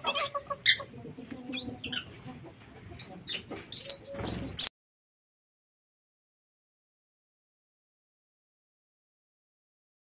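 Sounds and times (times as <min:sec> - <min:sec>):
canaries chirping: 0:00.0 - 0:04.7.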